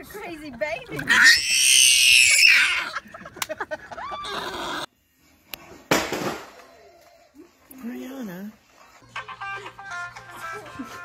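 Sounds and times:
toddler shrieking: 0:01.1 - 0:02.9.

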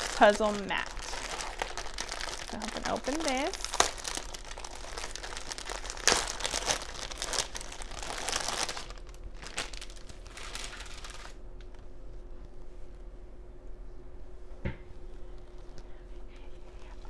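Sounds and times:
plastic wrapping crinkling: 0:00.0 - 0:11.8.

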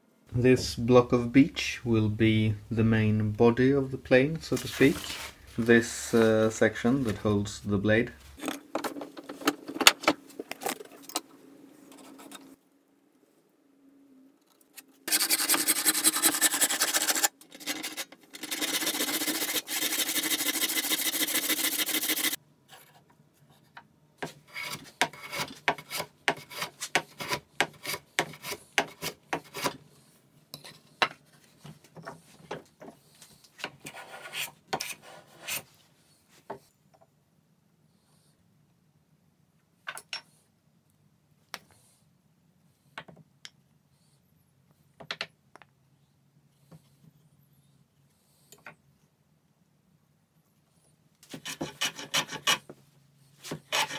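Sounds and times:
marking tool scratching wood: 0:15.1 - 0:22.4, 0:24.2 - 0:29.8, 0:51.3 - 0:52.7, 0:53.4 - 0:53.9.

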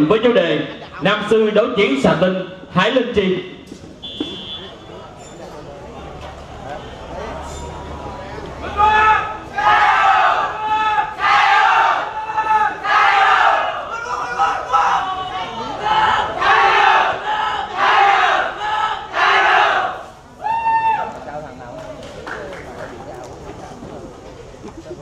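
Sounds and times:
group shouting in unison: 0:08.6 - 0:21.1.

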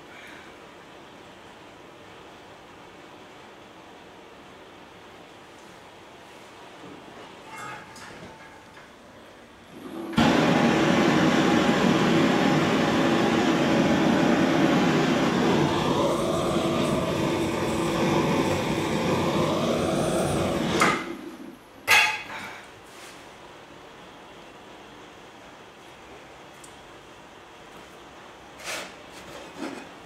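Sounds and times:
gas blowtorch burning: 0:09.7 - 0:22.2.

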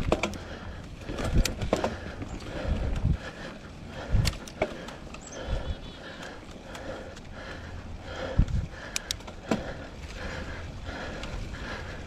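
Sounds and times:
bike clicks and rattles: 0:00.0 - 0:12.0
bike tyres on dirt: 0:00.0 - 0:12.0.

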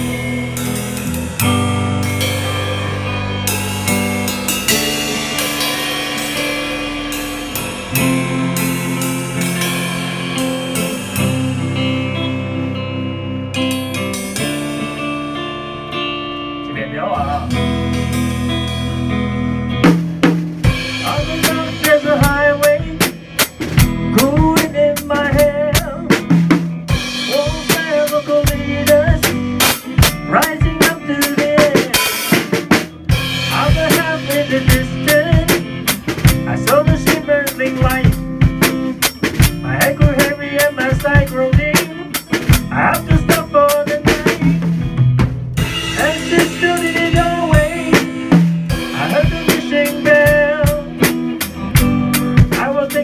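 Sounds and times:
drum kit: 0:00.0 - 0:53.0
electric guitar chords: 0:00.0 - 0:53.0.

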